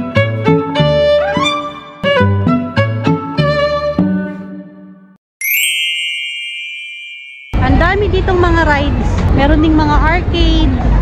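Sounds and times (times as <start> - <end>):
background music: 0.0 - 6.9
bright electronic ding: 5.4 - 7.7.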